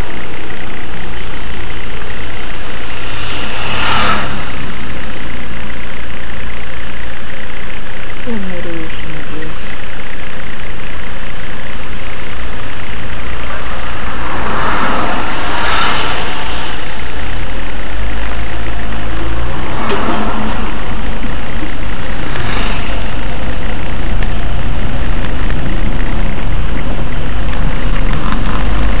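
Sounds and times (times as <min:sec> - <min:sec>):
car engine from inside cabin: 0:00.0 - 0:29.0.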